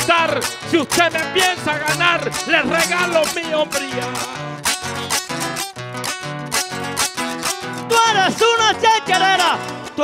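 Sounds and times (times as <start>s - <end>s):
plucked string instrument strumming: 0.0s - 10.0s.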